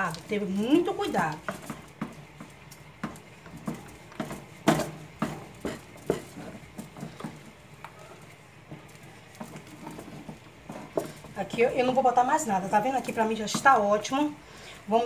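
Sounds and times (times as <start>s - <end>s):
wooden spoon stirring in metal pot: 0.0s - 15.0s.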